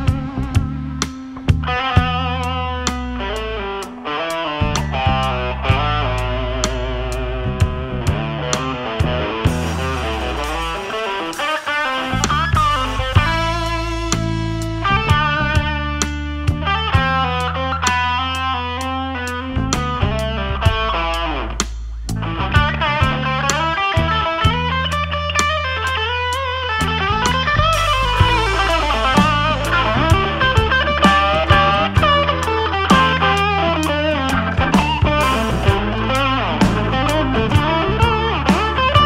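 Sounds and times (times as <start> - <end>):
bass line: 0.0 - 39.0
distorted electric guitar: 0.0 - 39.0
keyboards: 0.0 - 39.0
drum beat: 3.1 - 15.9, 26.9 - 39.0.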